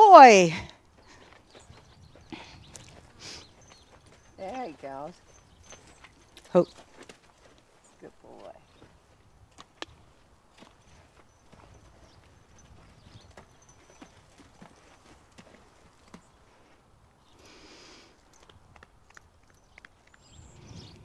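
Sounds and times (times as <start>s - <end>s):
horse hooves on sand: 0.0s - 17.1s, 18.1s - 21.0s.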